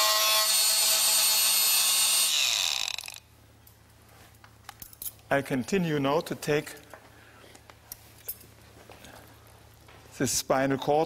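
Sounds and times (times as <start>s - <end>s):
electric bone saw whining: 0.0s - 3.3s.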